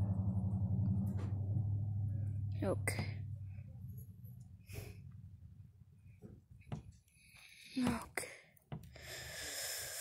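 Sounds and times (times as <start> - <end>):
steady low hum: 0.0 - 8.1.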